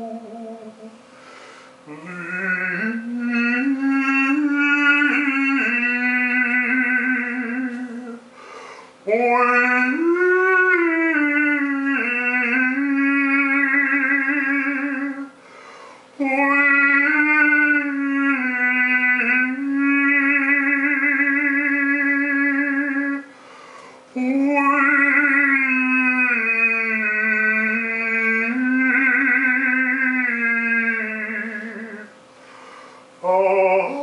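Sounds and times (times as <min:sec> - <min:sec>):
man overtone singing: 0:00.0 - 0:01.0, 0:01.9 - 0:08.2, 0:09.1 - 0:15.3, 0:16.2 - 0:23.3, 0:24.2 - 0:32.2, 0:33.2 - 0:34.0
man breathing: 0:01.1 - 0:01.8, 0:08.3 - 0:09.0, 0:15.4 - 0:16.2, 0:23.3 - 0:24.1, 0:32.3 - 0:33.2.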